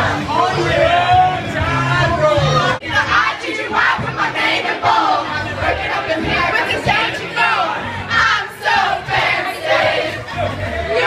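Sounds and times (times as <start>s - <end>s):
women singing karaoke: 2.8s - 11.0s.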